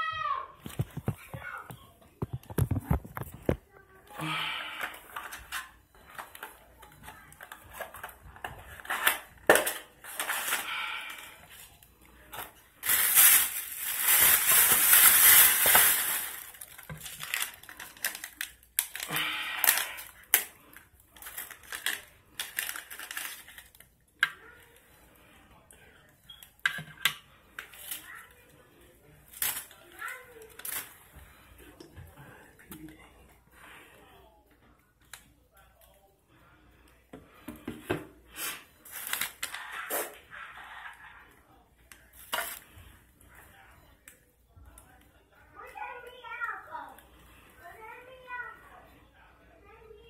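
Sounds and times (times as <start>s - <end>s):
cardboard and foil crinkling: 4.3s - 24.8s, 27.6s - 28.5s, 29.1s - 31.1s, 38.4s - 41.2s, 41.9s - 42.8s
plastic bag rustling: 7.4s - 23.8s, 38.8s - 40.0s.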